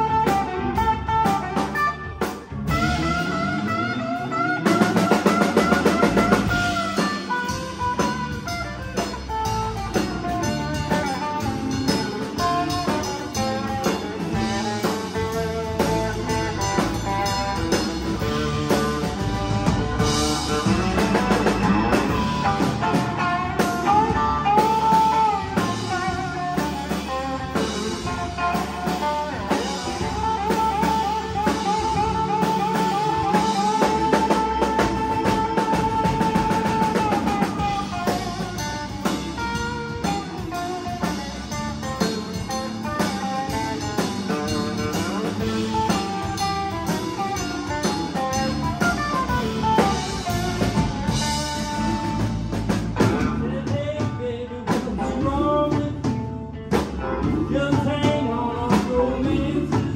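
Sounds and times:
bass guitar: 0:00.0 - 0:59.9
drum kit with cymbals: 0:00.0 - 0:59.9
electric guitars: 0:00.0 - 0:59.9.

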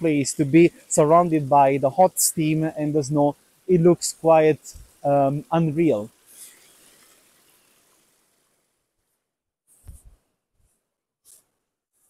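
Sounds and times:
faint hiss of steaming stream: 0:00.0 - 0:08.8.

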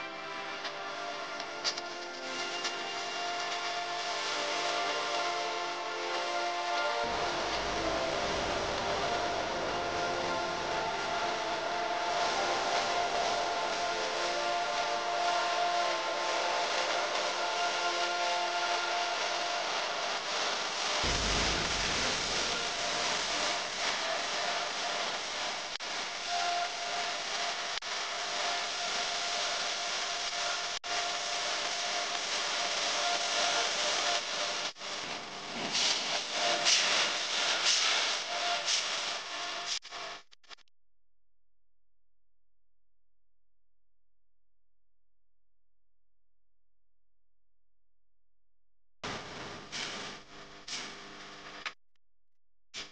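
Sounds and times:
pressure cooker hissing: 0:01.4 - 0:39.3
low thump: 0:21.0 - 0:22.6.

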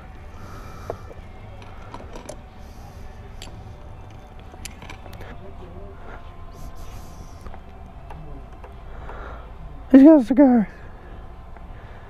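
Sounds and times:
steady low hum: 0:00.0 - 0:12.0
faint background talk: 0:00.4 - 0:12.0.

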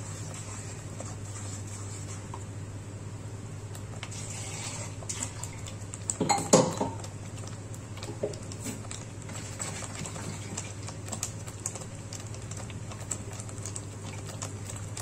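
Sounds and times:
steady low hum: 0:00.0 - 0:15.0
gravy simmering and popping: 0:03.6 - 0:15.0.

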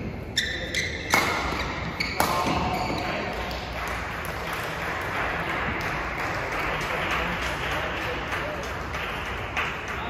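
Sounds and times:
badminton hall background noise: 0:00.0 - 0:10.0
light clapping: 0:03.3 - 0:10.0.

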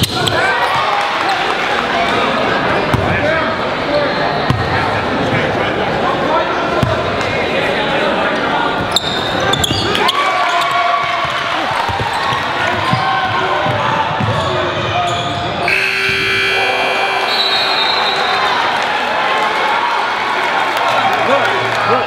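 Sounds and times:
players and crowd shouting: 0:09.2 - 0:22.0
steady held tone: 0:15.6 - 0:18.2.

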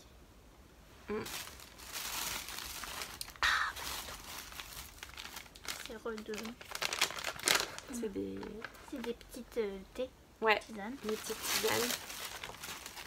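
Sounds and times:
paper crinkling and rustling: 0:01.3 - 0:09.2, 0:10.9 - 0:13.0.

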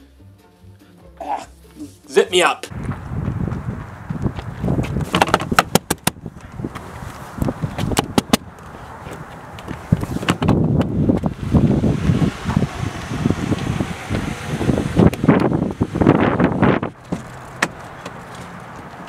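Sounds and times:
car door rattling and clunking: 0:04.4 - 0:06.9, 0:07.7 - 0:08.4, 0:09.6 - 0:11.3, 0:14.9 - 0:19.0.

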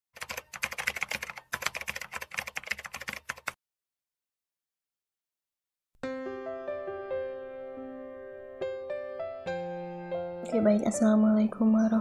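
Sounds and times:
rapid keyboard typing clicks: 0:00.2 - 0:03.6.

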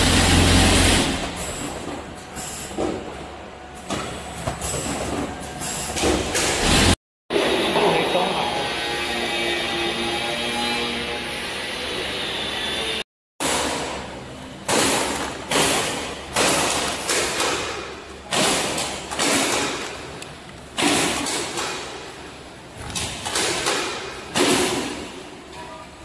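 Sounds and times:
packing machine humming: 0:00.0 - 0:05.9.

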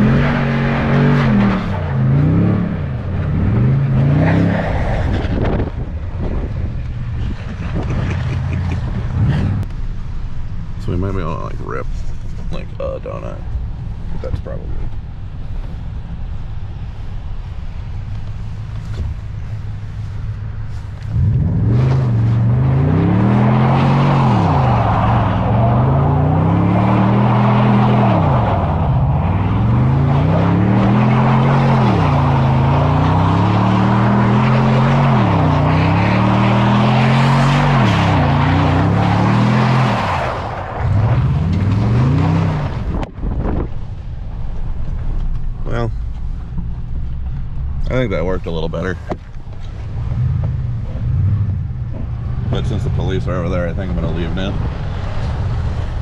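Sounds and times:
car engine revving: 0:00.0 - 0:09.7, 0:18.0 - 0:43.7, 0:49.6 - 0:56.0
tyres spinning on snow: 0:20.8 - 0:43.0.

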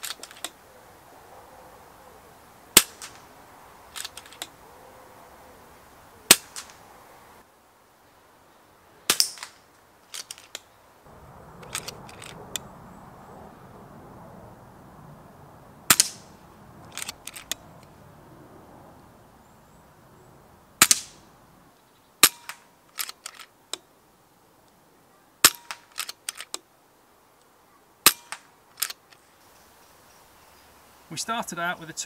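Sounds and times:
air rifle shots cracking: 0:02.7 - 0:03.3, 0:03.9 - 0:04.6, 0:06.3 - 0:06.8, 0:09.1 - 0:10.6, 0:11.6 - 0:12.7, 0:15.8 - 0:17.7, 0:20.8 - 0:21.3.

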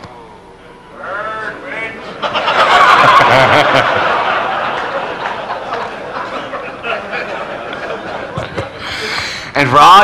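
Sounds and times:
audience laughing: 0:02.0 - 0:09.1
audience applause: 0:02.7 - 0:06.1.

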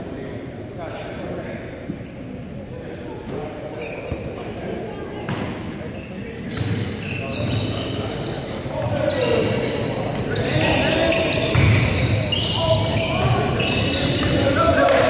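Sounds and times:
sneakers squeaking: 0:00.9 - 0:02.8, 0:03.4 - 0:04.5, 0:05.3 - 0:14.9
basketball bouncing: 0:11.4 - 0:11.9.

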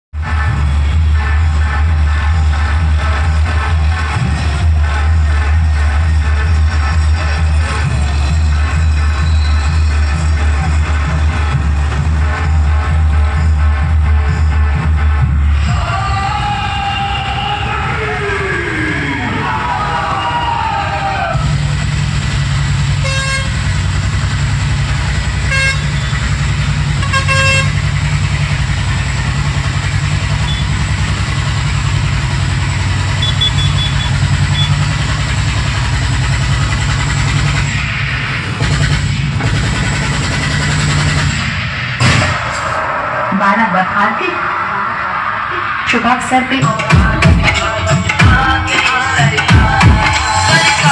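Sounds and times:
street noise: 0:00.0 - 0:50.9
dance music with heavy bass: 0:00.1 - 0:20.0, 0:33.2 - 0:35.1, 0:41.0 - 0:50.9
low engine hum: 0:21.4 - 0:41.6
vehicle horn toots: 0:23.0 - 0:23.7, 0:25.4 - 0:26.3, 0:27.0 - 0:27.9, 0:30.4 - 0:30.8, 0:33.1 - 0:34.8.

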